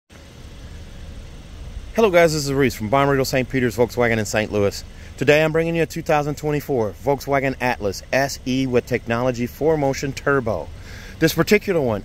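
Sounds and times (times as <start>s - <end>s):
faint hiss: 0.1s - 12.0s
steady low rumble: 0.1s - 12.0s.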